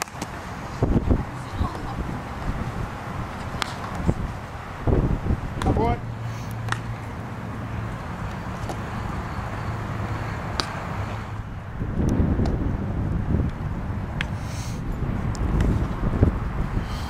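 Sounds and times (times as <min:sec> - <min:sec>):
wind buffeting microphone: 0:00.0 - 0:06.7, 0:10.8 - 0:17.0.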